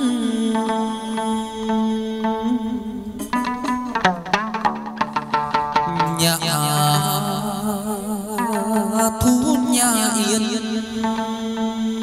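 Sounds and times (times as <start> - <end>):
plucked string notes: 0.0 - 12.0.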